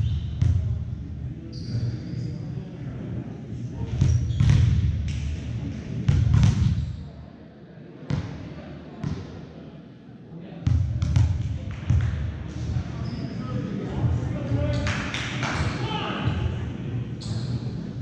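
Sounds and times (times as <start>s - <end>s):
voices of players and spectators: 0.0s - 18.0s.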